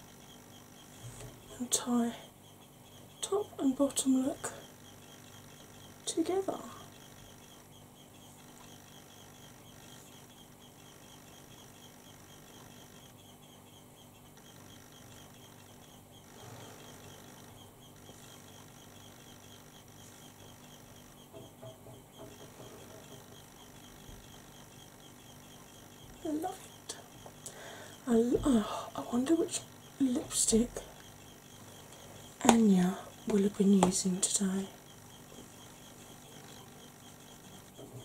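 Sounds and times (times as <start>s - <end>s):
faint high-pitched whine: 0.0s - 38.0s.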